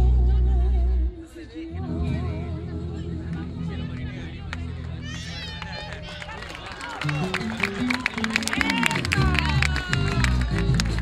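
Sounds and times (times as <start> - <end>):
voices calling out: 3.4 - 11.0.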